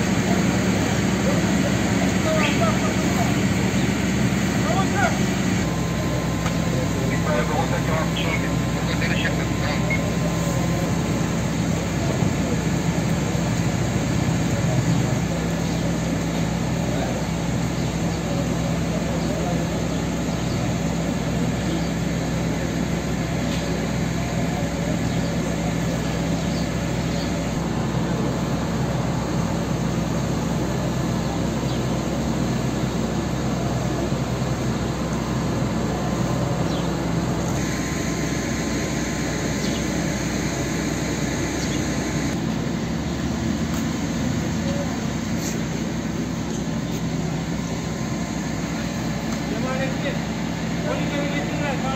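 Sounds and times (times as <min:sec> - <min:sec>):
steady engine drone: 0:00.0 - 0:51.9.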